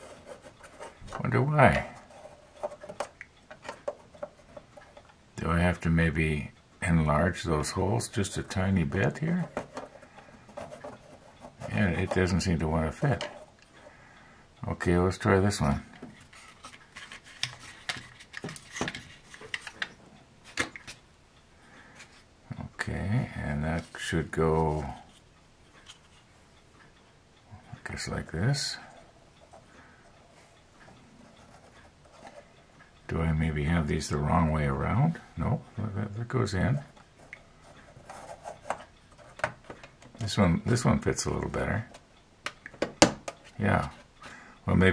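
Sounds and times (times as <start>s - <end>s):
plastic parts scraping: 0.0s - 5.1s, 9.3s - 13.6s, 16.0s - 21.0s
small plastic parts clicking: 16.2s - 19.9s.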